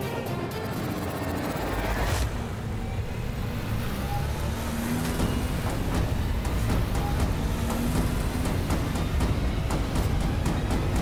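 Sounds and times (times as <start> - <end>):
background music: 0.0 - 11.0
car engine and road noise: 0.0 - 11.0.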